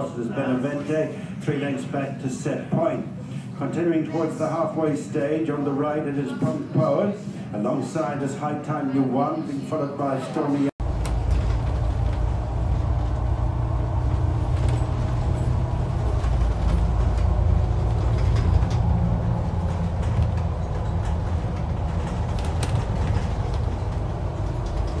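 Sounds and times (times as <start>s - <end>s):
bus engine and road rumble: 10.4s - 25.0s
light clicks and rattles: 10.8s - 25.0s.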